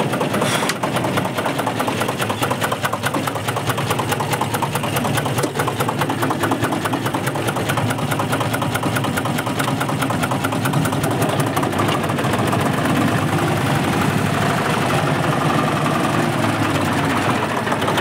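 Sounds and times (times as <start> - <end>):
diesel tractor engine idling: 0.0 - 18.0.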